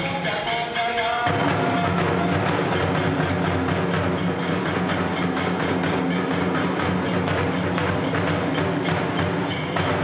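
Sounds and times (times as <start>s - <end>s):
small hand cymbals: 0.0s - 10.0s
barrel drum beating: 1.3s - 10.0s.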